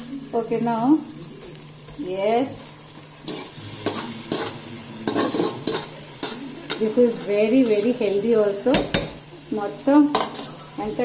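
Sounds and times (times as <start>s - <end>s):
food sizzling in a pot: 0.0s - 11.0s
wooden spatula scraping metal: 3.2s - 8.2s.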